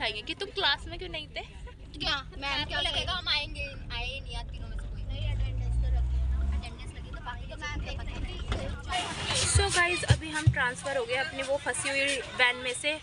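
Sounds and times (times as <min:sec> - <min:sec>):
van engine droning: 0:00.0 - 0:10.0
passengers' voices: 0:04.3 - 0:13.0.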